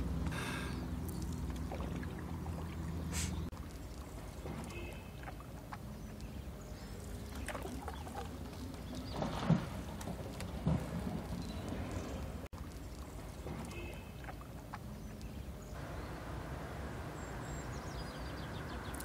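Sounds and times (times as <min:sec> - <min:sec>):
water drips and splashes: 0:00.0 - 0:18.0
paddle strokes in water: 0:01.3 - 0:05.9, 0:06.9 - 0:14.9.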